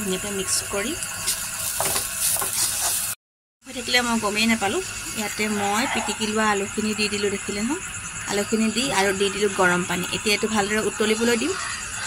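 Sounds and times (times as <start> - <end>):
onions sizzling in a pan: 0.0 - 3.2.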